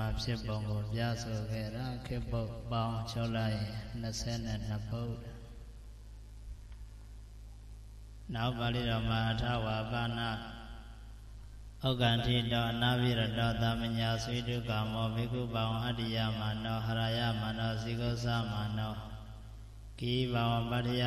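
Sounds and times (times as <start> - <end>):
person chanting into a microphone: 0.0 - 5.5, 8.3 - 10.9, 11.8 - 19.2, 20.0 - 21.0.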